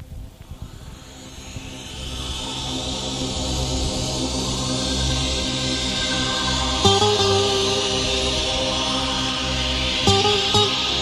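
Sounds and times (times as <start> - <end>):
low steady tones: 0.0 - 11.0
music: 0.0 - 11.0.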